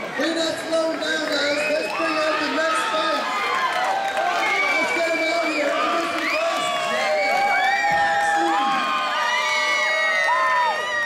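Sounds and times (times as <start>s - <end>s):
crowd cheering loudly: 0.0s - 11.0s.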